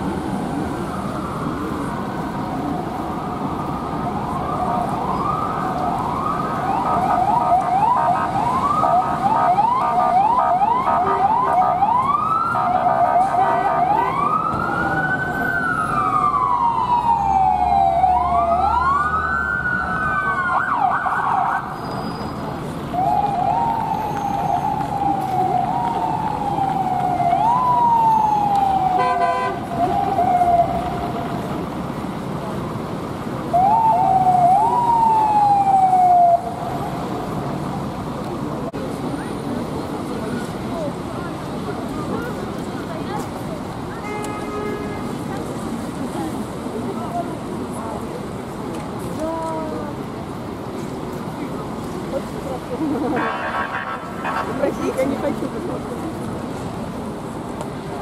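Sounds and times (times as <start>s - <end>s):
police sirens wailing: 0.0s - 21.8s, 22.5s - 44.1s, 51.2s - 58.0s
city traffic: 0.0s - 58.0s.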